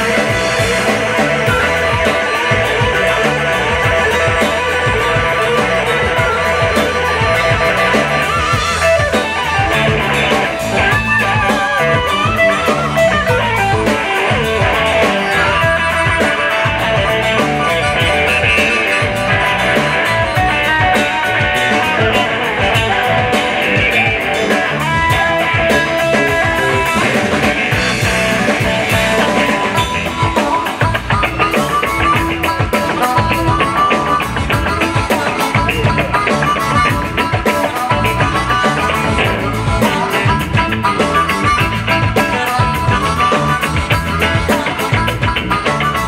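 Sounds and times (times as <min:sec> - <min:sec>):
bass and drums: 0:00.0 - 0:46.0
electric guitar: 0:00.0 - 0:46.0
harmonica: 0:00.0 - 0:46.0.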